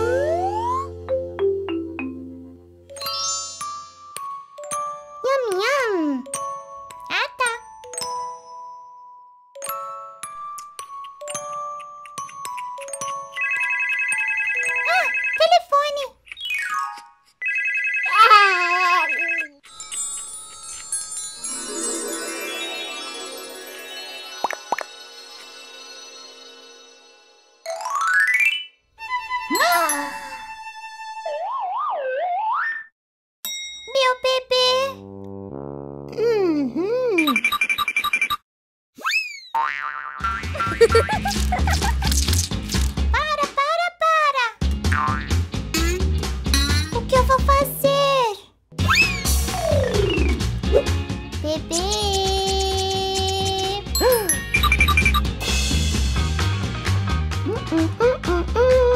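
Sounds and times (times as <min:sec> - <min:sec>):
toy baby-voice babbles: 0:18.1 - 0:19.6, 0:51.5 - 0:54.4
chiming tones: 0:19.3 - 0:28.8, 0:54.0 - 0:55.4
cartoon boing: 0:39.5 - 0:40.5
upbeat background music: 0:40.2 - 0:43.6, 0:44.6 - 0:47.9, 0:48.8 - 0:58.9.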